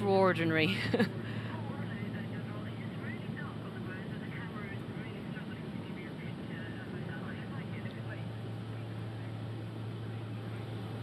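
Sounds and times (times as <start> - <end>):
aircraft cabin drone: 0.0 - 11.0.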